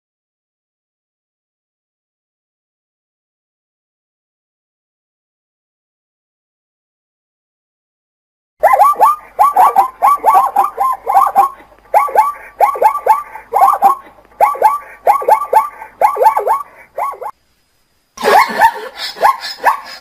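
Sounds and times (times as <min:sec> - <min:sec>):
zebra yelping calls: 0:08.6 - 0:17.3.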